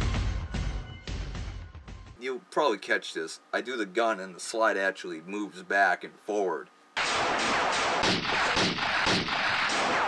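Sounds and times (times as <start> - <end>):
rapid gunfire: 7.0 - 10.0.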